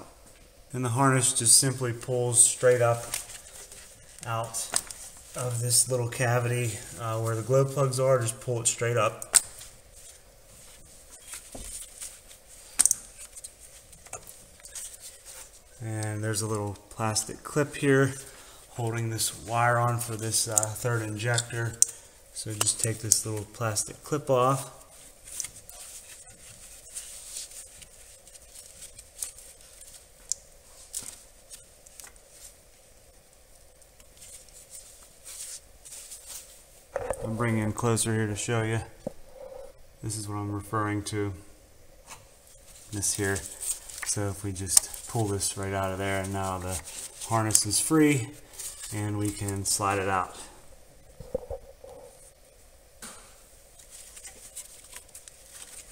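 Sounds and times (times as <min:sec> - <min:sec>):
wires rustling and scraping: 0:00.0 - 0:41.4, 0:42.0 - 0:52.7, 0:53.3 - 0:55.9
low steady hum: 0:00.0 - 0:55.9.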